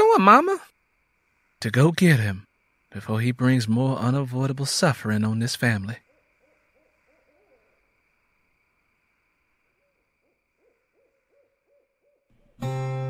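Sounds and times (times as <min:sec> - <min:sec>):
owl hooting: 0:06.0 - 0:08.4, 0:09.6 - 0:12.6
loud guitar music: 0:12.6 - 0:13.0.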